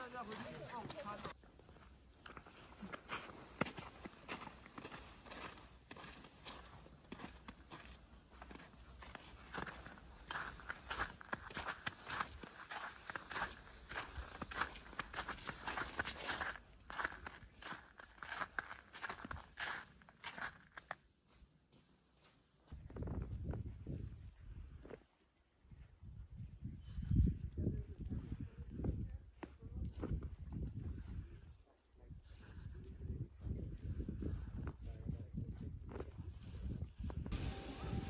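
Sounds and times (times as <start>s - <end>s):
footsteps on slushy snow: 0.0s - 22.8s.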